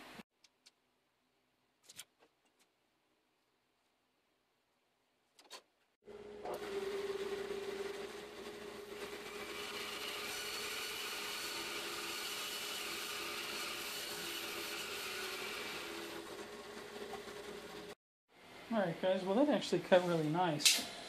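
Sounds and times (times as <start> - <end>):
band saw cutting wet log: 8.6 - 16.5.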